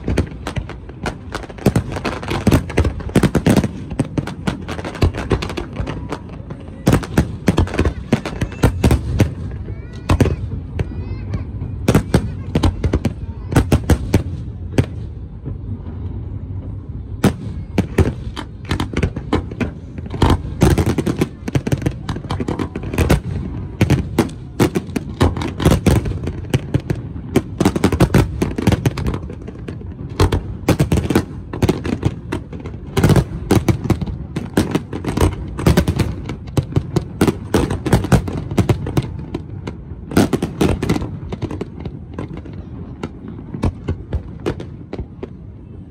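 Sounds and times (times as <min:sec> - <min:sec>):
fireworks bursting with sharp bangs: 0:00.0 - 0:45.9.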